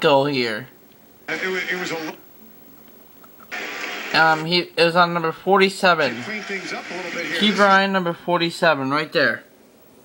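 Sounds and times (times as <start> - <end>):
arena crowd noise through tv: 1.2 - 2.7, 3.5 - 9.0.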